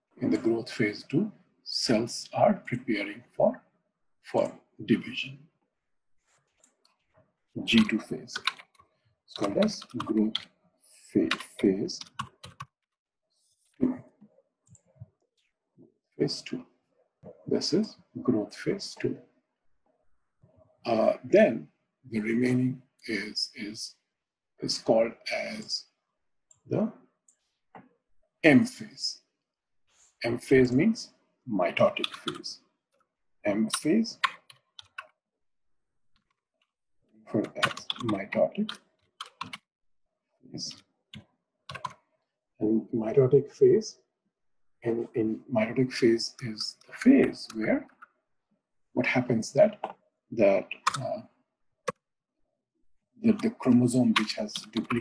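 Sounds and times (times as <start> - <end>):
typing on computer keyboard: 7.8 - 8.8, 9.4 - 10.5, 11.3 - 12.8, 32.0 - 32.4, 33.7 - 35.1, 37.4 - 39.6, 41.7 - 42.0, 50.8 - 51.0.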